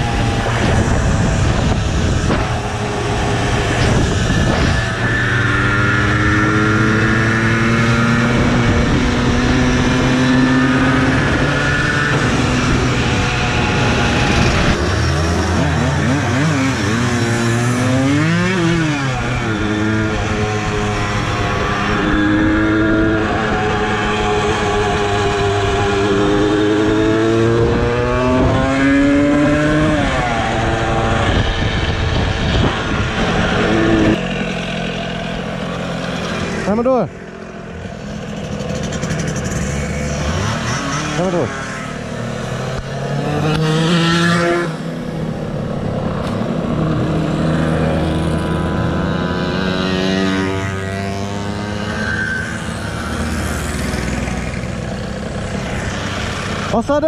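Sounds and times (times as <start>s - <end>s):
wind on microphone: 0.0s - 15.8s, 21.3s - 34.3s
moped engine revving: 0.0s - 57.0s.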